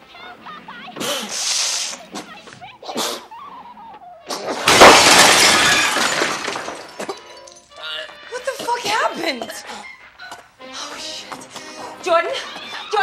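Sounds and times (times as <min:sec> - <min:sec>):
glass and crockery breaking: 0:04.6 - 0:08.0.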